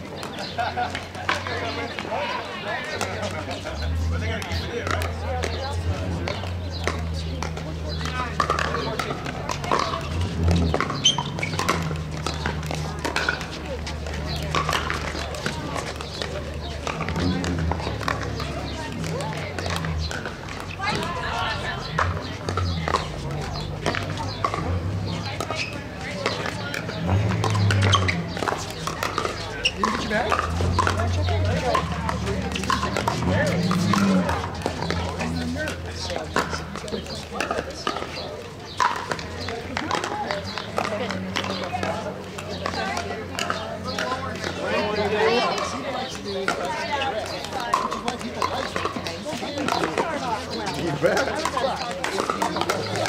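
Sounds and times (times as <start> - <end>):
indistinct chatter: 0.0 - 53.0
paddles hitting plastic ball: 4.4 - 53.0.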